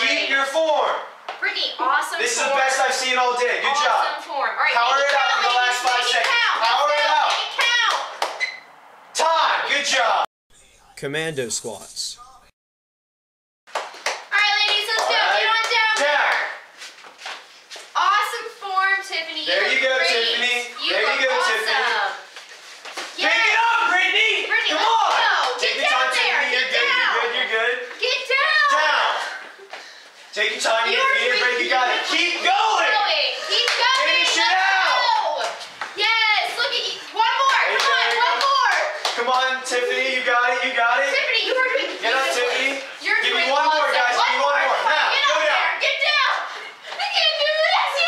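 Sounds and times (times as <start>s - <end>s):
girls talking and calling out: 1.2s - 2.4s, 3.6s - 8.2s, 14.3s - 16.5s, 18.0s - 22.3s, 24.4s - 29.8s, 30.6s - 39.0s, 41.0s - 48.0s
sharp hand claps: 5.0s - 8.4s, 13.7s - 16.5s, 37.4s - 39.5s
young women calling out: 28.0s - 29.1s, 32.6s - 39.0s, 45.1s - 48.0s.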